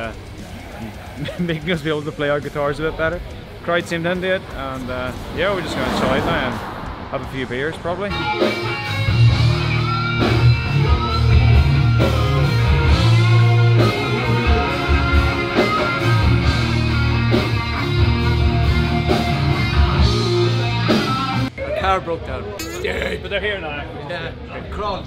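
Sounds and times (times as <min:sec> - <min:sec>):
heavy metal music: 0:05.1 - 0:21.5.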